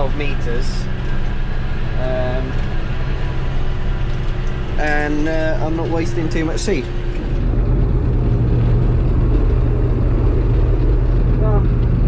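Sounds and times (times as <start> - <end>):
combine harvester engine drone: 0.0 - 12.0.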